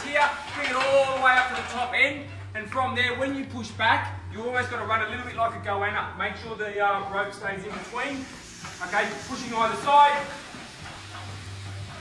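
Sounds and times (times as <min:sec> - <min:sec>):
man speaking: 0:00.0 - 0:10.4
faint hiss: 0:07.0 - 0:12.0.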